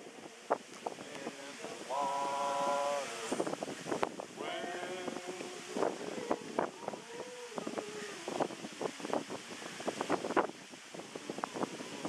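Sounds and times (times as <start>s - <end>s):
voices singing: 0.0s - 9.3s.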